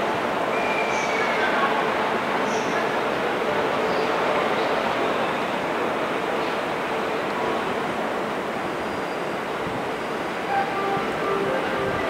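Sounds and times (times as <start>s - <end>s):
trains rumbling on rails: 0.0s - 12.0s.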